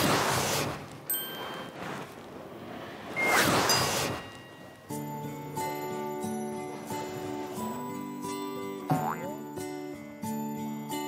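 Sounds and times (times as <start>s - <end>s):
high bright chime: 1.1s - 1.9s, 3.2s - 6.5s.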